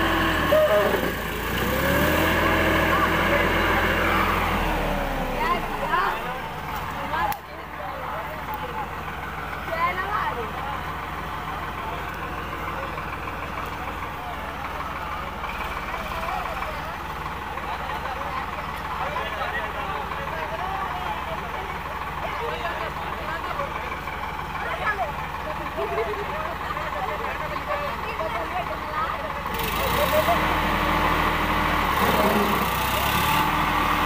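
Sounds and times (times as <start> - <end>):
tractor diesel engine running: 0.0 - 34.0
voices: 0.0 - 34.0.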